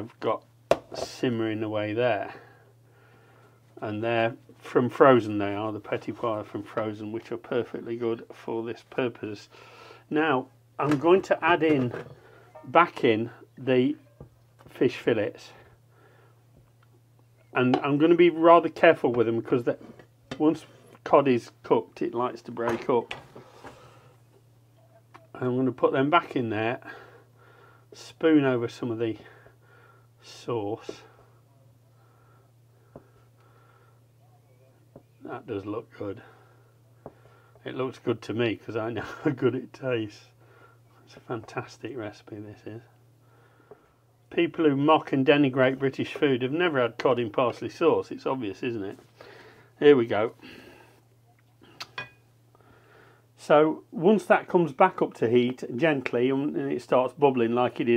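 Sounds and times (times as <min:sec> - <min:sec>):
faint low hum: 0:00.0 - 0:57.9.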